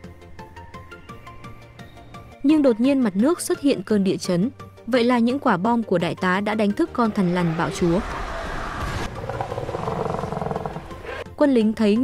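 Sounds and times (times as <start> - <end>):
monster growling roar: 7.1 - 11.2.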